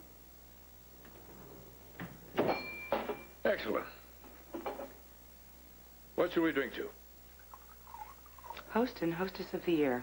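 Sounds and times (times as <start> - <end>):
glassware clinking: 2.4 - 3.4
glass ringing tone: 2.5 - 3.4.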